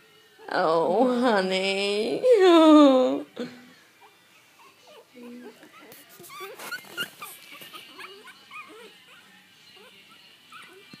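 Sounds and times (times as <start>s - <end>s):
puppies whimpering and squeaking: 3.9s - 11.0s.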